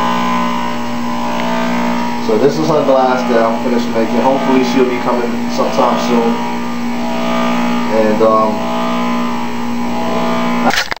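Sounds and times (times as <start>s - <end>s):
juicer motor humming: 0.0s - 11.0s.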